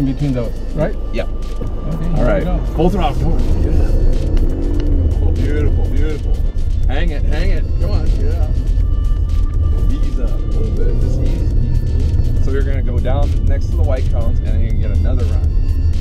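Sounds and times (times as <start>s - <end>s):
voices: 0.0s - 15.7s
background music: 0.0s - 16.0s
car engine rumble: 0.0s - 16.0s.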